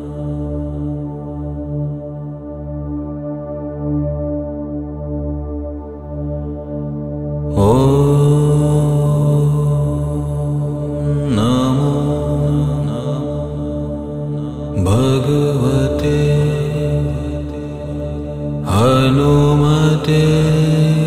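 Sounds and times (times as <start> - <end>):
voice chanting: 7.5 - 21.0.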